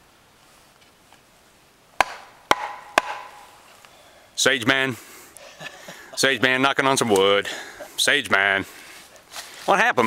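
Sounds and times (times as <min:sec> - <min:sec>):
wooden baton knocking on wood: 0:02.0 - 0:03.4.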